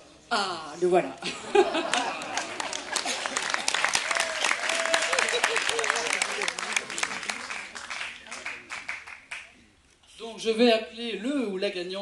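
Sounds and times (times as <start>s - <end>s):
audience applauding: 1.8s - 9.5s.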